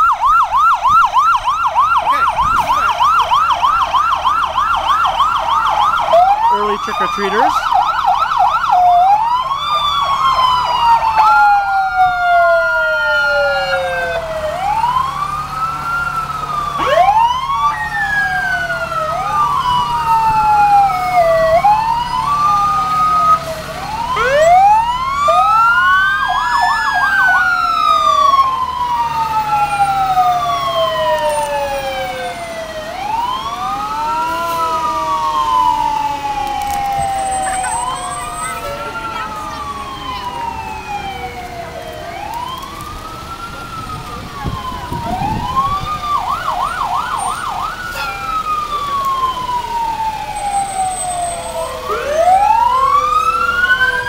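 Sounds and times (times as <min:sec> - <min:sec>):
fire engine sirens wailing: 0:00.0 - 0:54.0
truck engines running: 0:00.0 - 0:54.0.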